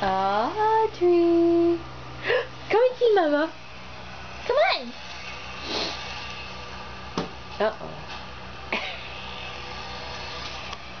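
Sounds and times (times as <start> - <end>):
low mechanical hum: 0.0 - 11.0
even hiss: 4.4 - 7.1.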